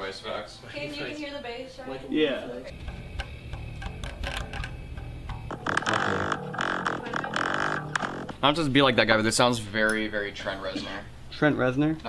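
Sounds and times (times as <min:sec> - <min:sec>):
plucked electric bass guitar: 0:02.7 - 0:08.5.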